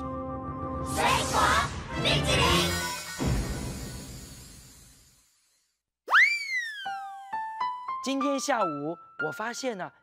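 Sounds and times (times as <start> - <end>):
cartoon whistle: 6.1 - 7.3.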